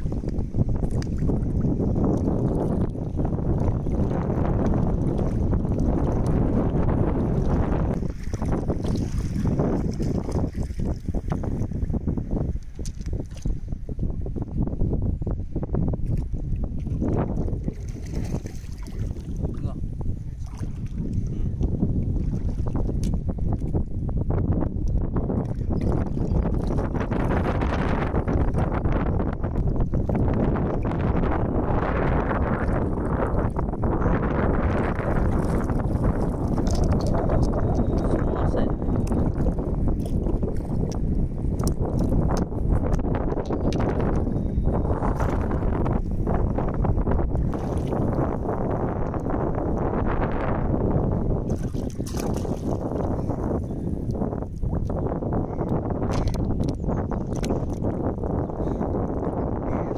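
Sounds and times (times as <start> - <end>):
water sloshing: 0.0 - 11.8, 16.0 - 19.7, 20.3 - 21.4, 34.6 - 44.2, 44.8 - 46.7, 47.3 - 49.3, 51.4 - 53.7, 56.0 - 58.0
wind buffeting microphone: 0.0 - 59.9.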